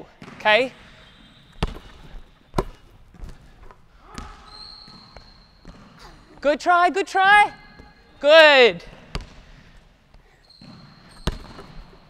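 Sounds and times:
basketball bouncing on wooden floor: 0.2 - 0.4, 1.5 - 6.0, 8.9 - 9.4, 10.6 - 12.0.

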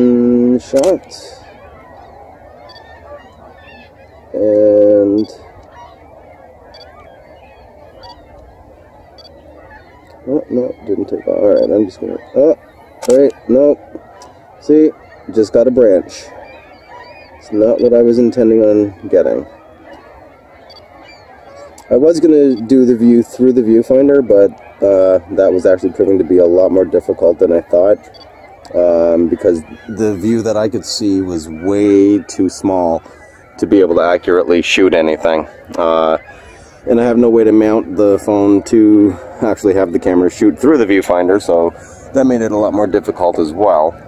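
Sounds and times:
faint outdoor ambience: 0.0 - 44.0
high bird calls: 0.0 - 44.0
faint high chirps: 1.4 - 4.1, 6.6 - 10.3.

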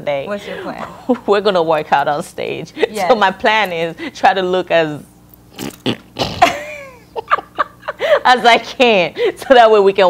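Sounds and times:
women laughing: 6.2 - 8.5.

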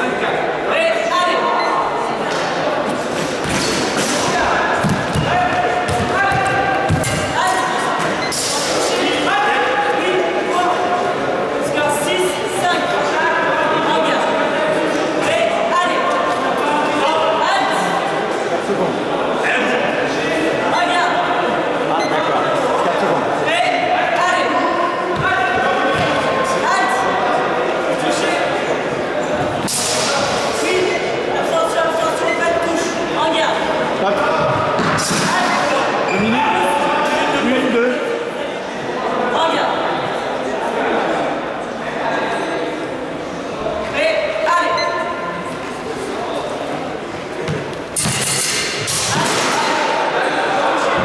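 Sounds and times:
voices in a large hall: 0.0 - 51.0.

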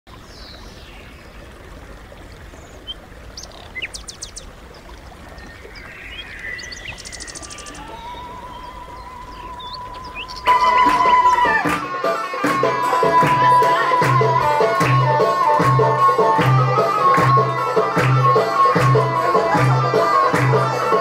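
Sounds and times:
steady outdoor hiss: 0.1 - 21.0
songbirds chirping and whistling: 2.4 - 11.6.

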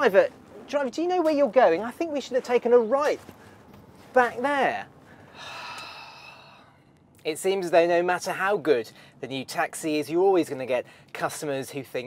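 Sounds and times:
person sighing: 5.2 - 6.9.

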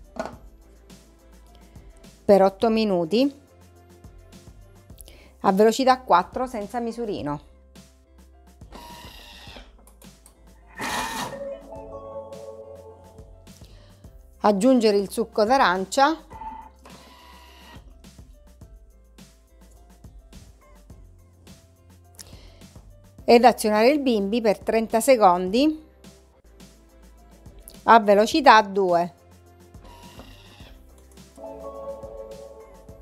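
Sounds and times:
faint background music: 0.0 - 33.0.

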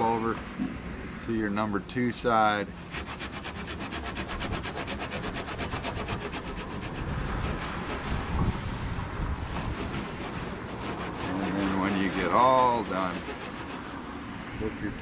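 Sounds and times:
towel rubbing on metal lid: 2.8 - 14.2.

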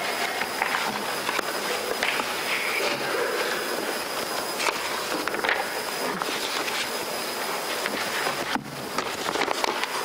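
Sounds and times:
steady background hiss: 0.0 - 10.0
faint clicks and rustles: 3.9 - 10.0.

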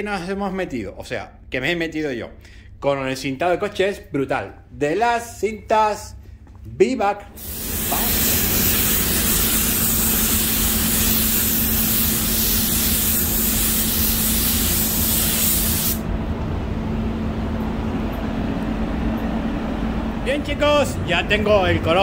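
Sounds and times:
ventilation hum: 0.0 - 22.0
paint spray gun hissing: 7.4 - 16.0.

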